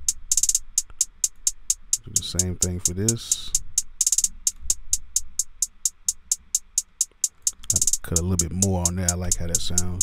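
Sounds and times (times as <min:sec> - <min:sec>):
electronic hi-hat ticks: 0:00.0 - 0:10.0.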